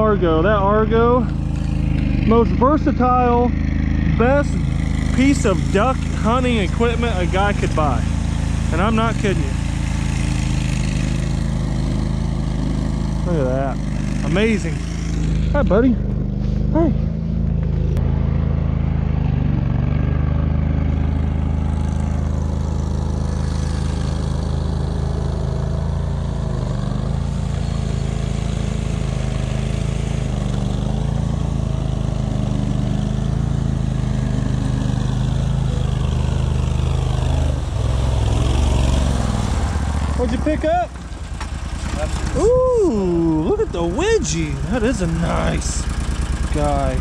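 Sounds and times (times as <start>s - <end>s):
vehicle engine running in water: 0.0s - 47.0s.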